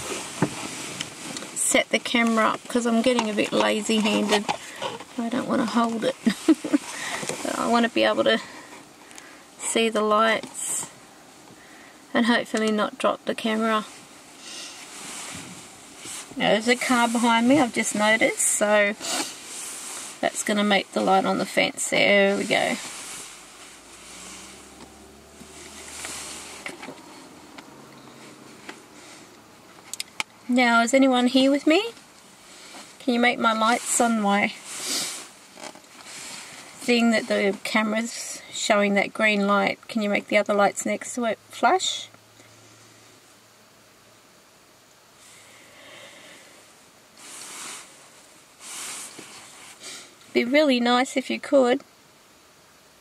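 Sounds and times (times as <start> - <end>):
faint background hiss: 0.0 - 53.0
person breathing: 6.8 - 7.4, 8.4 - 9.6, 11.6 - 12.1, 14.4 - 15.5, 45.2 - 46.7
tyre hiss: 13.9 - 20.3, 22.1 - 27.2, 34.6 - 35.4, 45.2 - 50.3
car passing by: 22.8 - 29.3.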